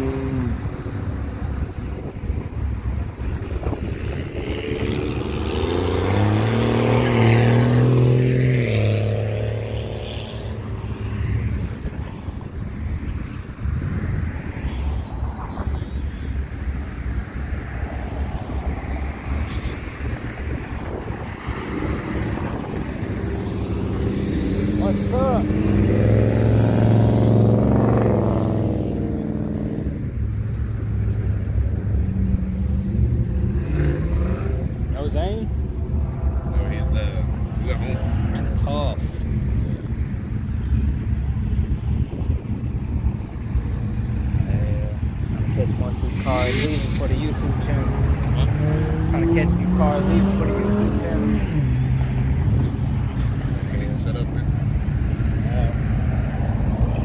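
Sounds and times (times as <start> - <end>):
car accelerating and revving: 0.0 - 57.0.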